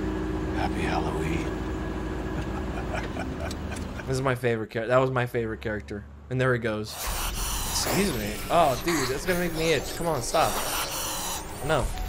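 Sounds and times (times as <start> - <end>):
car engine idling: 0.0 - 4.3.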